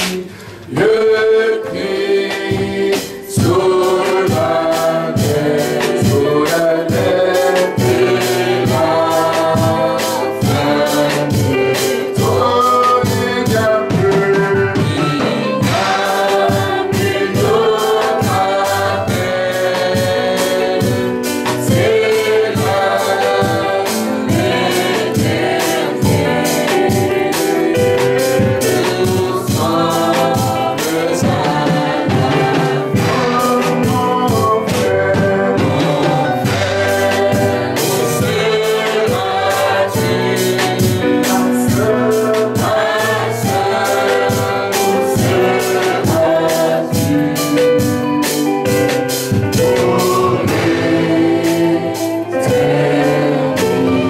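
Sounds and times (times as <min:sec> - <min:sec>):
band with percussive beat: 0:00.0 - 0:54.0
choir singing: 0:00.0 - 0:54.0.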